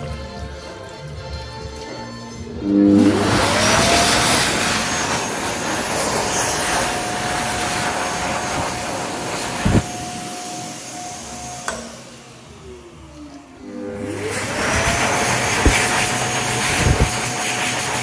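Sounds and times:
hand dryer blowing: 2.5s - 18.0s.

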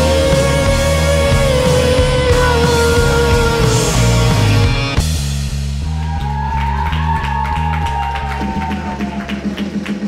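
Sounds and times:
pulsing bass line: 0.0s - 9.8s.

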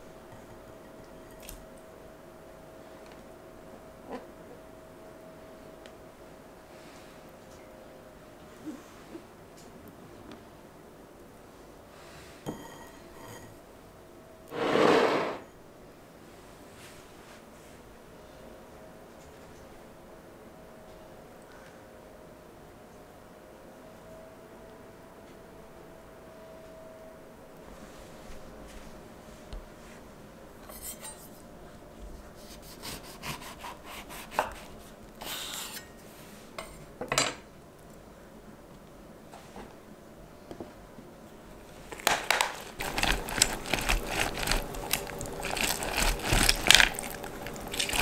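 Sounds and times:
spatula swishing wet mixture: 42.8s - 48.0s.

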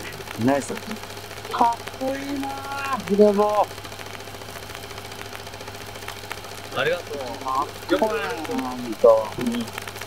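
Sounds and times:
man speaking: 0.4s - 3.7s, 6.7s - 9.7s.

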